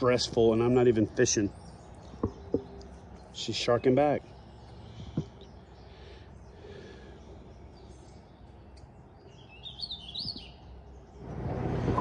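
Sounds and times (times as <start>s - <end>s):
bird singing chirpy phrase: 0.0s - 11.2s
outdoor background noise: 0.0s - 12.0s.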